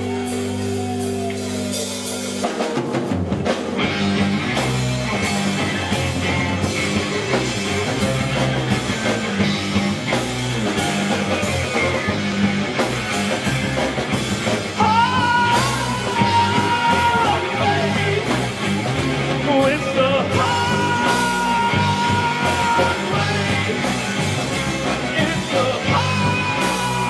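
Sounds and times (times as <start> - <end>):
rock band playing loud: 0.0 - 27.0.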